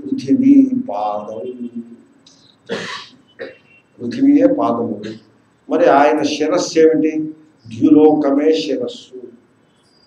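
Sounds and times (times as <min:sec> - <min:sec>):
man clearing his throat: 0:02.7 - 0:03.7.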